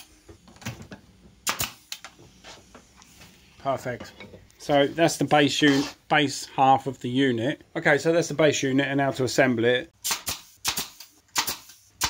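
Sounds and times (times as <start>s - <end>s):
pin nailer firing: 1.4s - 2.0s, 10.0s - 11.8s.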